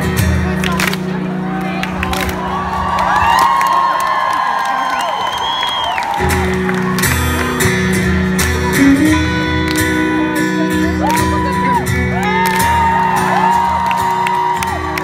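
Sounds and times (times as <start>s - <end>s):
electric guitar and bass notes: 0.0s - 3.3s, 6.2s - 15.0s
crowd screaming and whooping: 1.1s - 8.8s, 10.7s - 15.0s.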